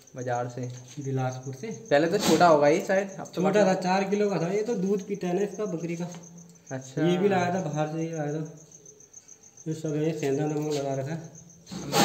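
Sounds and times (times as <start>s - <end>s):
cricket chirping: 0.0s - 12.0s
man talking: 0.2s - 8.6s, 9.7s - 12.0s.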